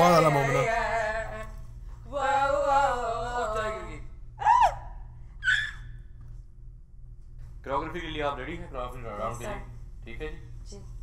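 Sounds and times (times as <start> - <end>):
person talking: 0.0 - 0.7.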